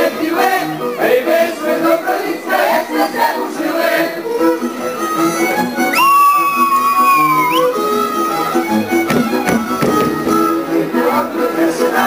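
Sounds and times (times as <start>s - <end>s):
folk band fiddle dance music: 0.0s - 12.0s
high sliding fiddle note: 4.4s - 10.6s.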